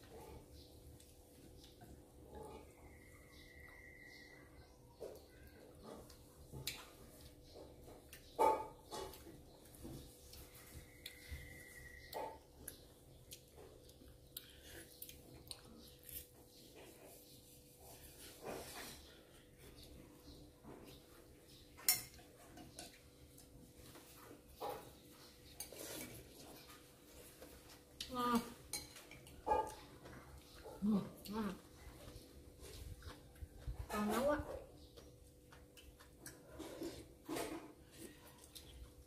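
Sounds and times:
chopsticks and spoons clicking on bowls: 0:21.7 - 0:23.6, 0:27.7 - 0:31.5.

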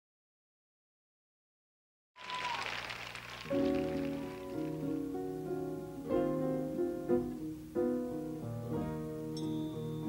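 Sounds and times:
arpeggiated piano: 0:03.5 - 0:10.0.

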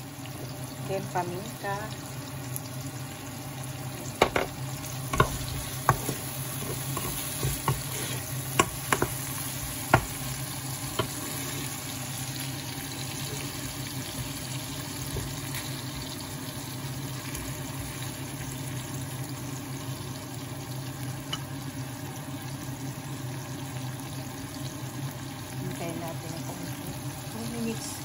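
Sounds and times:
vegetables sizzling in oil: 0:00.0 - 0:28.0
wooden spatula scraping a pan: 0:05.2 - 0:10.2.

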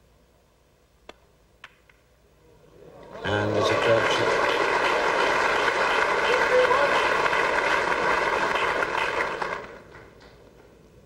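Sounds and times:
audience applauding: 0:03.0 - 0:10.2.

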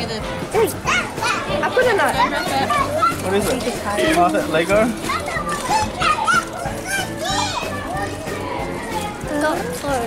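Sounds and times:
children chattering and calling out: 0:00.0 - 0:10.0
music playing: 0:00.0 - 0:10.0.

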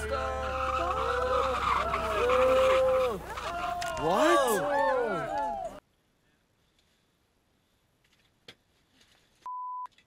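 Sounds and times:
censor bleep: 0:09.5 - 0:09.9.

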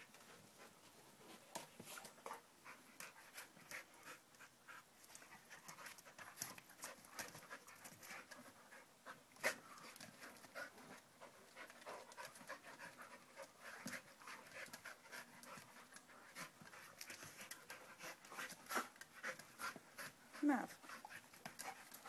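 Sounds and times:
dogs panting: 0:00.0 - 0:22.0.

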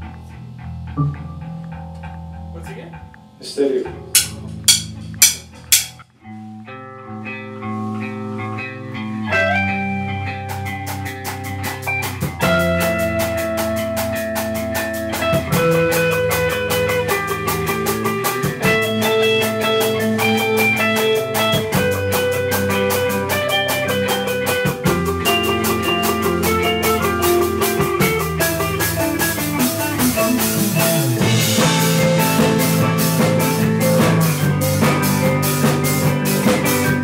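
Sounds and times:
guitar chords: 0:00.0 - 0:37.0
rock band playing: 0:00.0 - 0:37.0
drums with busy cymbals: 0:04.2 - 0:06.0, 0:10.5 - 0:37.0.

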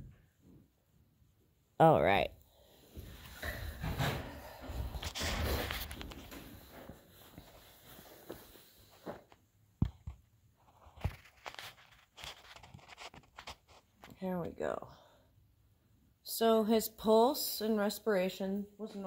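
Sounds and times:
footsteps: 0:02.9 - 0:14.2.

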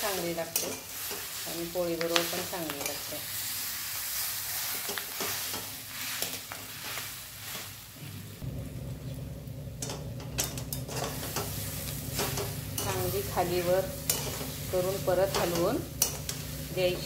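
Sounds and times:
oil sizzling: 0:00.0 - 0:17.0
metal spatula scraping a pan: 0:00.1 - 0:01.4, 0:04.5 - 0:07.8, 0:10.4 - 0:17.0
low steady hum: 0:08.0 - 0:17.0.

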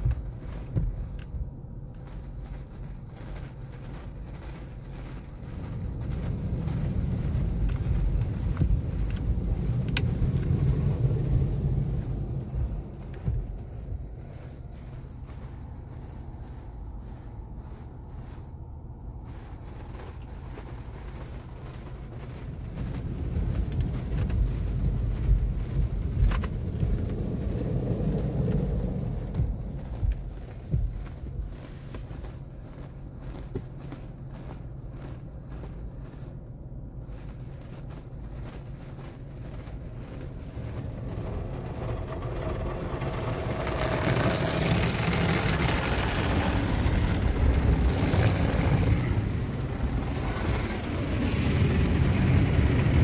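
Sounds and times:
car wash brush scrubbing: 0:00.0 - 0:53.0.

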